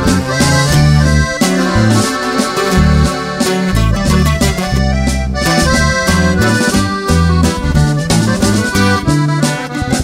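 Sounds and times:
accordion playing held chords: 0:00.0 - 0:10.0
stepping bass line: 0:00.0 - 0:10.0.

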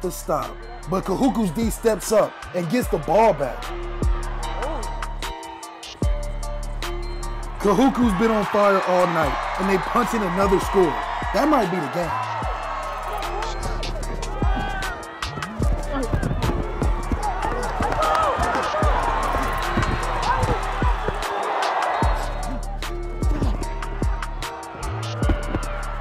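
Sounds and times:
music with beat and bass: 0:02.8 - 0:08.4, 0:09.3 - 0:26.0.

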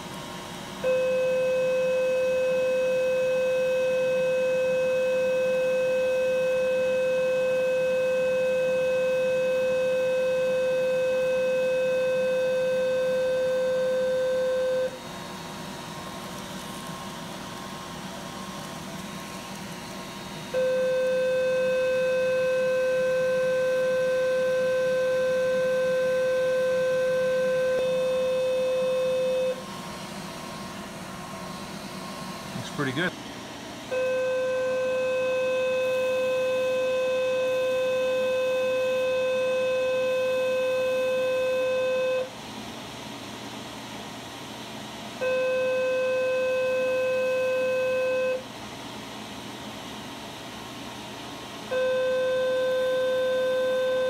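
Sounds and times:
steady electronic activation tone: 0:20.6 - 0:29.7.

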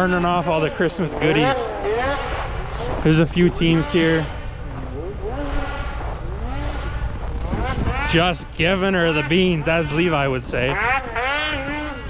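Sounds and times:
low rumble: 0:00.0 - 0:12.0
snowmobile engine revving: 0:00.0 - 0:12.0.

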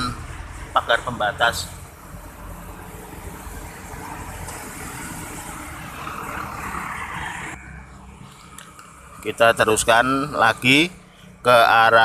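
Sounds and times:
cars and motorbikes passing: 0:00.0 - 0:12.0.

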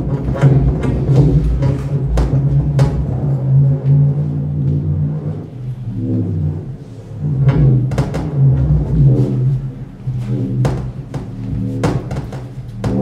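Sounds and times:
deep electronic drones: 0:00.0 - 0:13.0.

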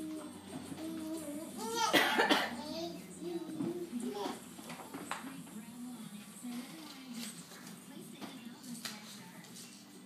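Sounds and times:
rough cough-like vocal burst: 0:01.9 - 0:02.6.

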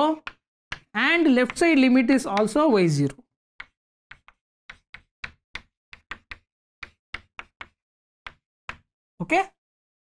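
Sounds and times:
chalk tapping on chalkboard: 0:00.2 - 0:02.7, 0:03.6 - 0:08.9.

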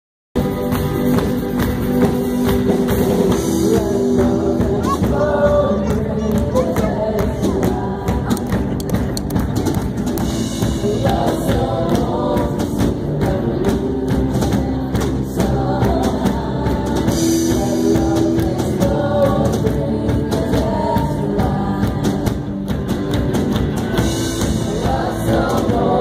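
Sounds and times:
drum kit: 0:00.4 - 0:26.0
electric guitar: 0:00.4 - 0:26.0
voices singing together: 0:02.8 - 0:08.8, 0:10.3 - 0:23.0, 0:24.0 - 0:26.0.

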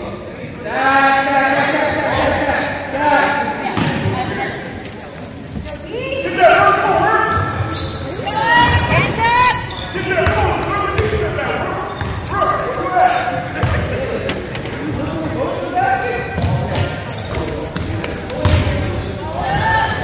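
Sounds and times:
sneakers squeaking: 0:03.8 - 0:20.0
people calling out: 0:05.4 - 0:14.3, 0:17.1 - 0:20.0.

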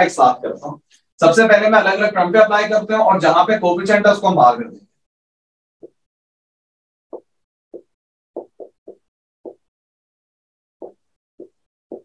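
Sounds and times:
pen tapping on surface: 0:07.2 - 0:09.7, 0:10.8 - 0:12.0.

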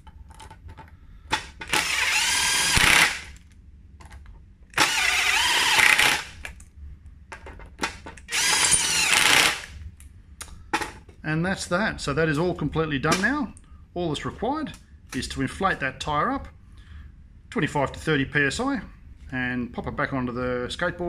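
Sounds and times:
cordless driver running: 0:01.6 - 0:03.3, 0:04.8 - 0:06.4, 0:08.3 - 0:09.7.

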